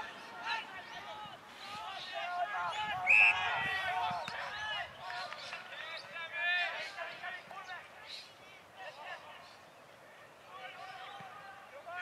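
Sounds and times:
footballers and spectators calling out: 0.0s - 12.0s.

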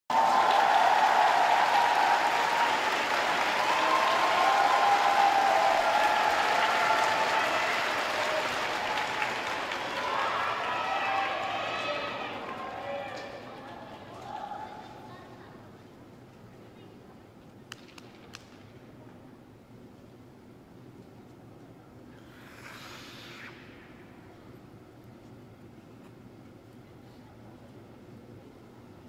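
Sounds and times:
audience applauding and cheering: 0.1s - 14.4s.

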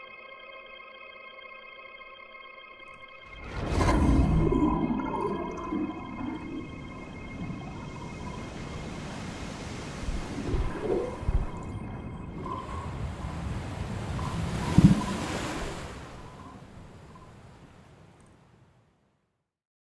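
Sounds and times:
faint held tone: 0.0s - 17.4s
higher drone: 2.9s - 15.6s
surf and rushing water: 3.2s - 18.9s.

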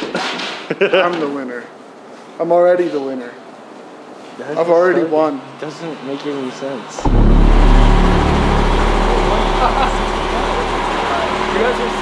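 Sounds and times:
loud machine-like rumbling: 7.0s - 12.0s.

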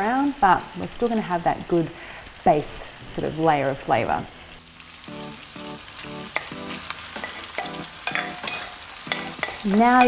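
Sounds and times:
beef mince sizzling in frying pan: 0.0s - 10.0s.

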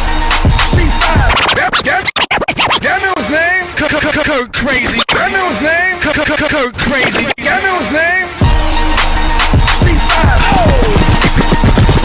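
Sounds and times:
bass beat: 0.0s - 7.6s, 8.3s - 12.0s
vinyl record scratching: 0.5s - 8.0s, 9.6s - 12.0s.

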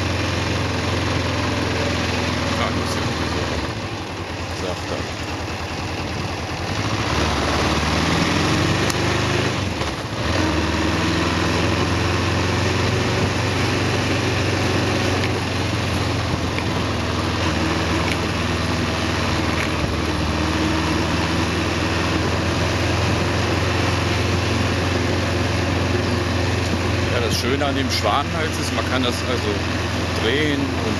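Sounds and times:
motorcycle engine: 0.0s - 30.9s.

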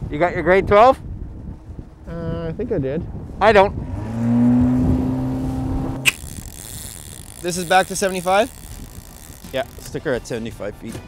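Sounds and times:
outboard motor running: 5.6s - 10.1s
sharp click: 6.0s - 8.7s.

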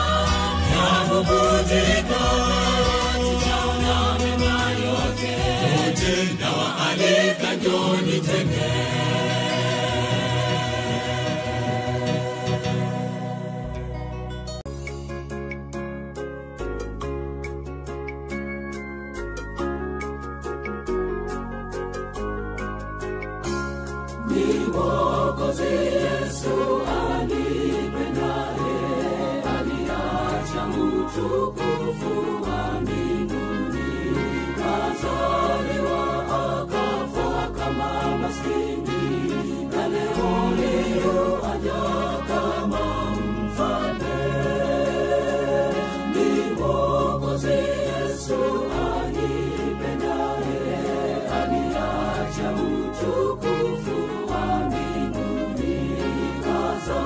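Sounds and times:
choir singing: 0.0s - 14.2s, 24.2s - 57.0s.

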